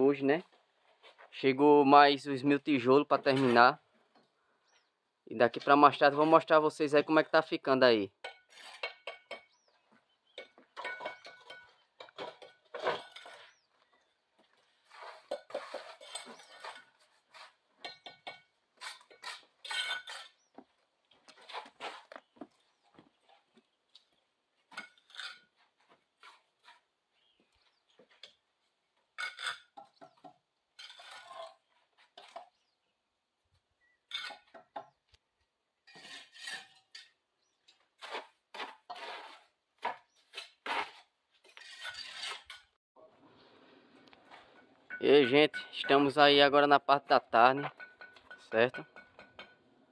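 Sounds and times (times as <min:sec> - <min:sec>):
clay bricks clinking and knocking: 0:10.4 - 0:13.5.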